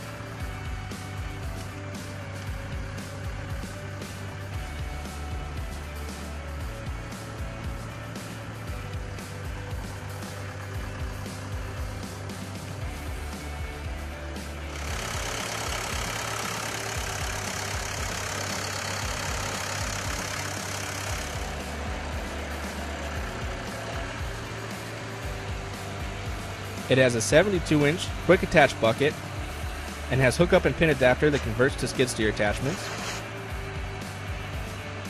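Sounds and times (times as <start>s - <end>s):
diesel engine running: 0.0s - 35.0s
rush of engine and fan noise: 0.0s - 35.0s.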